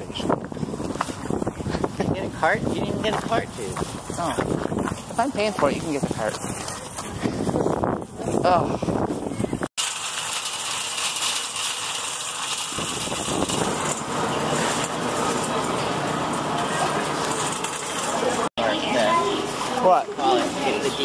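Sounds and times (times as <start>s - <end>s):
shopping cart rattling on concrete: 0.0s - 21.0s.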